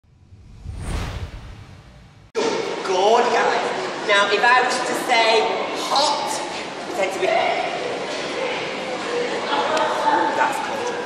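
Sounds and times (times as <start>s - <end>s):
whoosh sound effect: 0.0s - 2.3s
low rumble: 0.0s - 2.4s.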